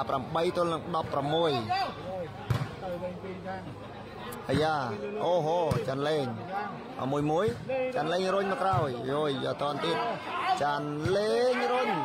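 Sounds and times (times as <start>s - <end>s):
ball struck thump: 2.5s - 2.8s.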